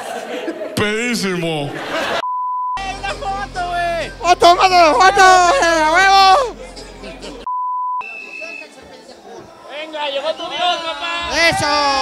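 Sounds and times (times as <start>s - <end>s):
censor bleep: 2.2s - 2.8s, 7.5s - 8.6s.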